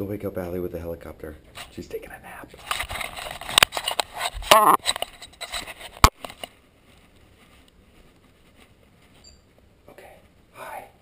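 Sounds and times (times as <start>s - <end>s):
camera handling rustling: 2.6s - 9.2s.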